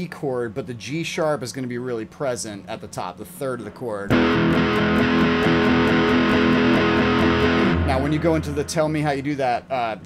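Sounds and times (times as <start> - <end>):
electric guitar strumming chord: 4.1 - 9.2.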